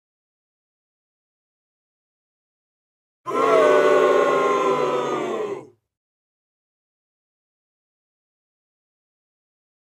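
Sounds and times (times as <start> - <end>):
loud drawn-out yell: 3.3 - 5.8.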